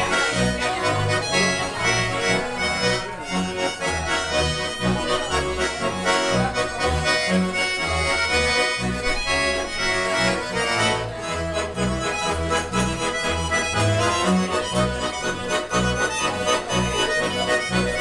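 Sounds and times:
button accordions playing lively tune: 0.0s - 18.0s
double bass low notes: 0.0s - 18.0s.

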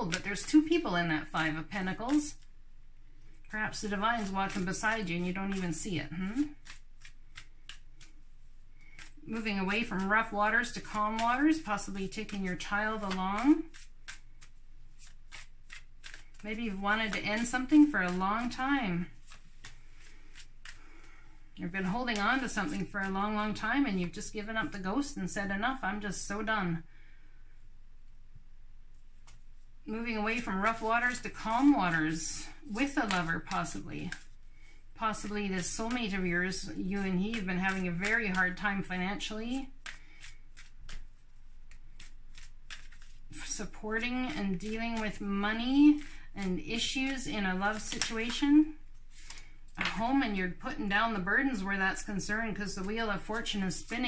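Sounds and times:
cards being shuffled: 0.1s - 2.5s, 3.2s - 23.6s, 28.9s - 50.0s, 51.5s - 54.0s.

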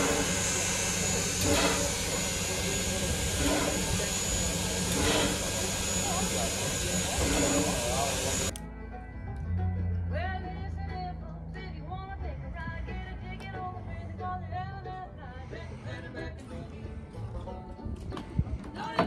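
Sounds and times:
steam locomotive hissing: 0.0s - 8.5s
faint voices: 0.0s - 8.6s
music: 8.5s - 19.0s.

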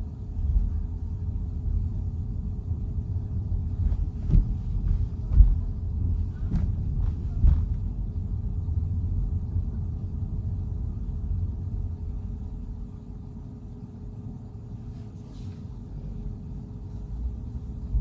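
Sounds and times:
road and tyre rumble in car: 0.0s - 18.0s.

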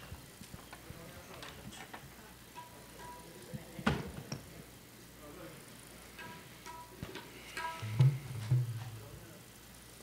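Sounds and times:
low murmuring voices: 0.0s - 9.6s.

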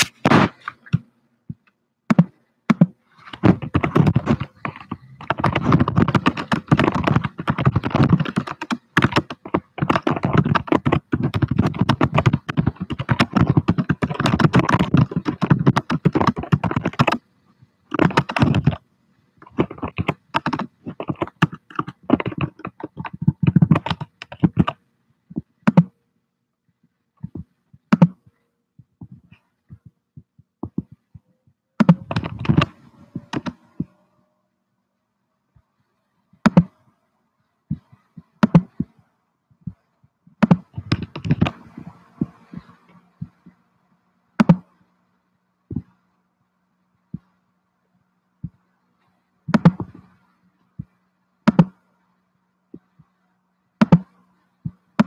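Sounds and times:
fast typing on keyboard: 2.1s - 17.2s, 17.9s - 18.8s, 19.4s - 24.8s, 25.4s - 25.9s, 30.6s - 31.0s, 31.8s - 33.9s, 37.7s - 38.8s, 40.4s - 43.4s, 44.4s - 44.7s, 49.5s - 50.1s, 51.5s - 51.8s, 53.8s - 54.1s.

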